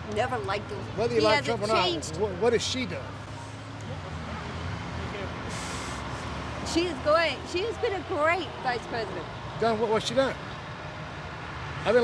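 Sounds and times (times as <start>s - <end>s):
vehicle engines humming: 0.0s - 12.0s
short hiss: 5.5s - 6.2s.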